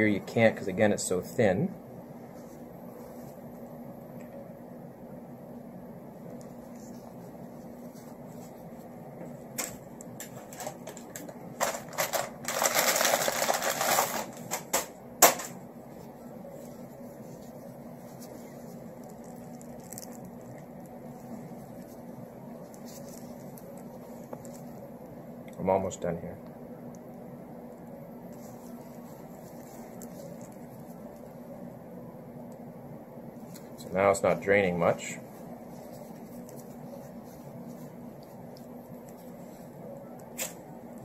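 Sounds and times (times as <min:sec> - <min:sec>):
faint hum: 0:00.0 - 0:41.0.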